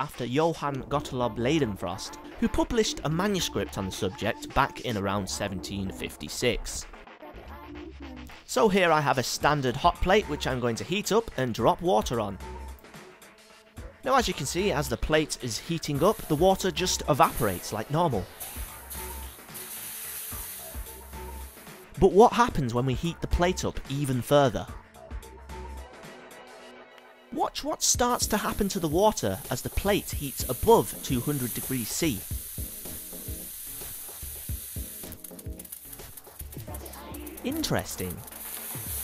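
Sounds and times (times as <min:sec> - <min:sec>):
faint background music: 0:00.0 - 0:13.0, 0:13.8 - 0:25.7, 0:26.4 - 0:39.0
water drops sizzling on hot plate: 0:16.0 - 0:22.0, 0:28.0 - 0:39.0.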